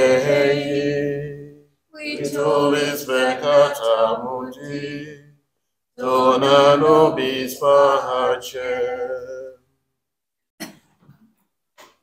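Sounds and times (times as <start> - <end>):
person singing a slow chant: 0.0 - 5.3.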